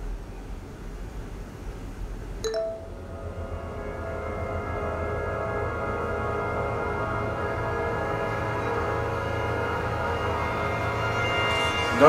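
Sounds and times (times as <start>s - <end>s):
sustained held music tones: 2.4s - 12.0s
chime-like ping: 2.5s - 3.0s.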